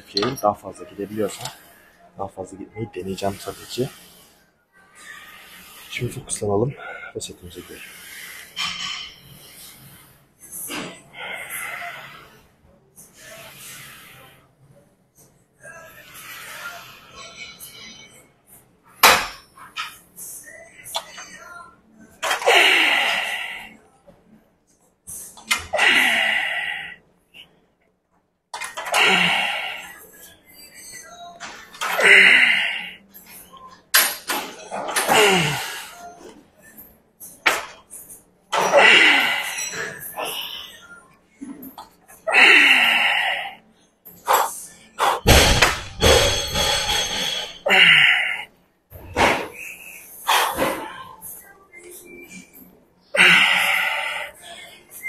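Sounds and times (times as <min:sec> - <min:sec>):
strained breaths: 0:03.1 - 0:14.5, 0:22.2 - 0:23.8, 0:25.1 - 0:27.5, 0:28.6 - 0:30.4, 0:31.5 - 0:33.5, 0:42.1 - 0:45.3, 0:53.1 - 0:55.0
man exhaling and grunting: 0:25.6 - 0:27.0, 0:28.9 - 0:29.8, 0:32.0 - 0:32.8, 0:35.0 - 0:35.9, 0:38.6 - 0:39.6, 0:42.3 - 0:43.5, 0:46.9 - 0:48.4, 0:53.2 - 0:54.0
person grunting: 0:35.1 - 0:35.8, 0:47.6 - 0:48.4
machine thuds and clunks: 0:45.2 - 0:47.4.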